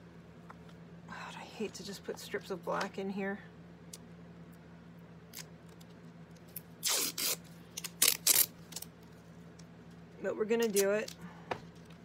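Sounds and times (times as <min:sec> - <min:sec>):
sharp tape snapping sounds: 0:06.5 - 0:08.9
tape ripping: 0:06.5 - 0:08.9.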